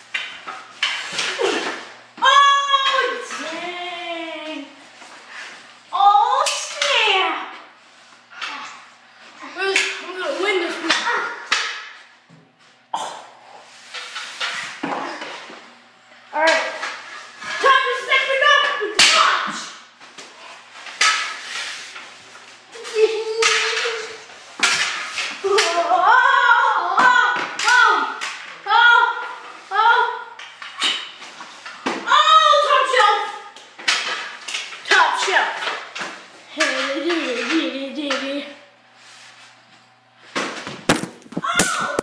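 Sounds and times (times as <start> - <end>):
hockey sticks knocking ball: 18.6 - 20.3, 22.8 - 26.0, 33.8 - 38.4, 40.3 - 42.0
boys shouting and talking: 25.4 - 30.4, 32.0 - 33.6.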